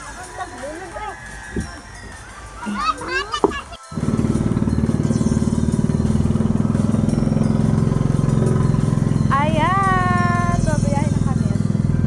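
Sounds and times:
boat engine putter: 2.7s - 12.0s.

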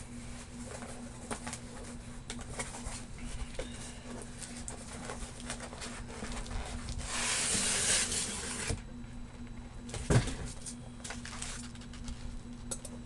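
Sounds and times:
packaging rustling and clicking: 10.6s - 12.7s.

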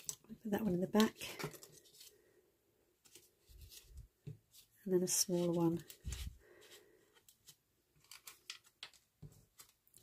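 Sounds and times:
paper rustling and clicks: 8.0s - 10.0s.

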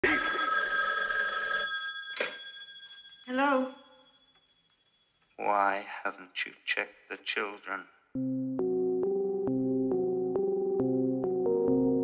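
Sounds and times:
telephone ringing: 0.0s - 5.3s.

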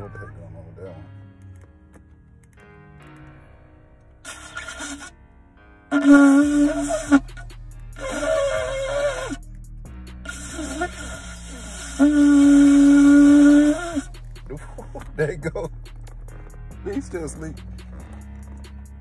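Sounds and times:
horn sputters: 4.2s - 5.1s, 5.9s - 9.5s, 10.2s - 15.0s
ram's horn blasts: 5.9s - 9.4s, 10.2s - 14.3s.

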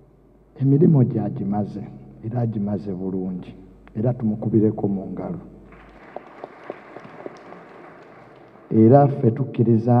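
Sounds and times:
scattered hand claps: 5.7s - 8.7s.

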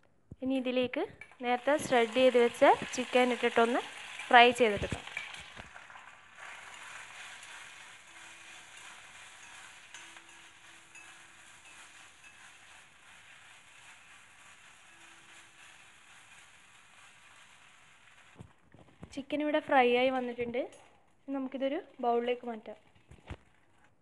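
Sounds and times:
spatula stirring: 1.2s - 19.1s
chicken sizzling in a pan: 1.4s - 18.7s.

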